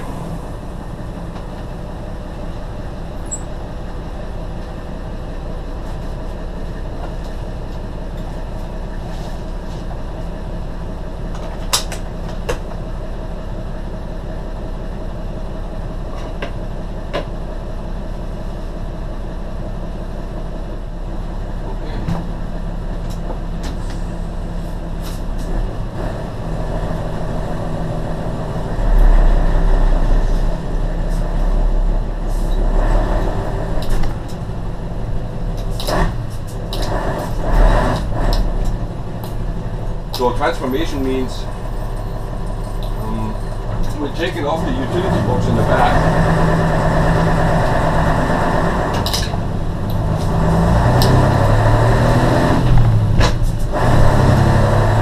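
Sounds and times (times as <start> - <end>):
diesel truck engine idling: 0.0 - 55.0.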